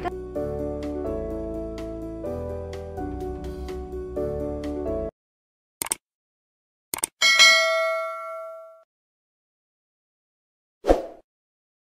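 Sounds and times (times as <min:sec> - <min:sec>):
notification bell ding: 0:07.2 - 0:08.8.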